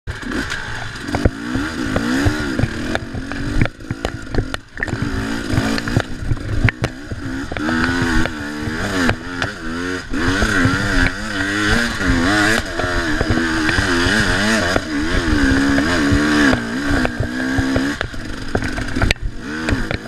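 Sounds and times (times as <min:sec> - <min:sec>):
dirt bike engine revving: 0:00.1 - 0:20.0
bike knocks and rattles: 0:00.2 - 0:20.0.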